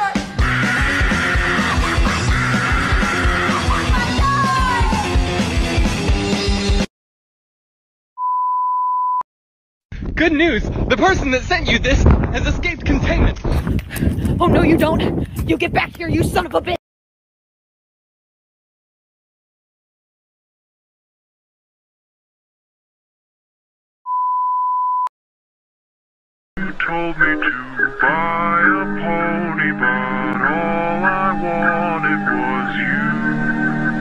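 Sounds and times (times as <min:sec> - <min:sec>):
electronic beep: 0:24.1 - 0:25.1.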